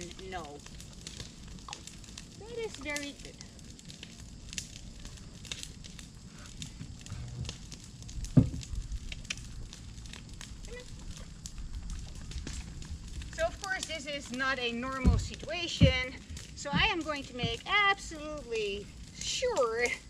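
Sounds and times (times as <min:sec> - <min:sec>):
low rumble: 0:00.0 - 0:19.2
fire crackling and popping: 0:00.0 - 0:20.0
heavy thump: 0:08.3 - 0:08.7, 0:15.0 - 0:17.7.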